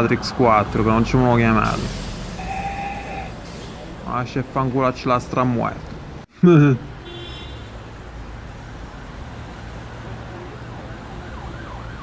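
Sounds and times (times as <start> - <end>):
city traffic rumble: 0.0 - 12.0.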